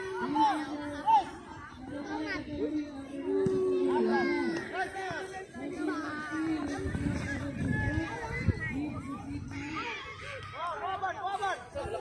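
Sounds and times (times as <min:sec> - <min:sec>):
children shouting and chattering: 0:00.0 - 0:12.0
loud shout: 0:03.2 - 0:05.2.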